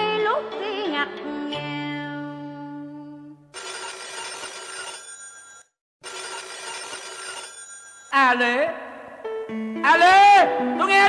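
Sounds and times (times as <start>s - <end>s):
telephone bell ringing: 3.6s - 8.4s.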